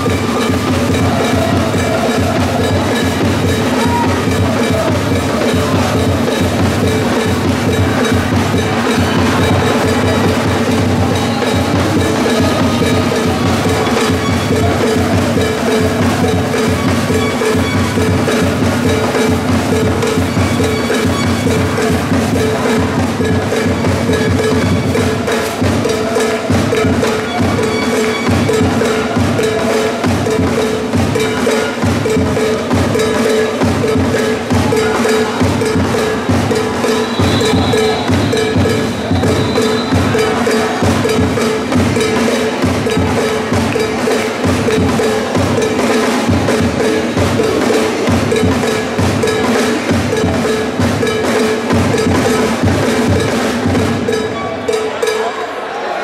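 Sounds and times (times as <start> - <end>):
drums playing steady beat: 0.0 - 55.4
wood-block and cowbell knocks: 0.0 - 55.5
held tone: 36.4 - 40.8.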